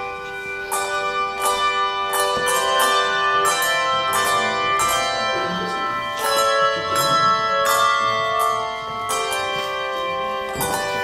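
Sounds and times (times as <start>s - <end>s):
handbell choir playing: 0.0s - 11.0s.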